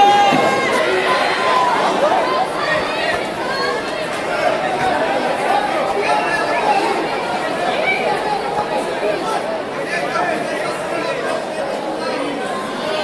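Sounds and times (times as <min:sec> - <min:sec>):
crowd chatter in a large hall: 0:00.0 - 0:13.0.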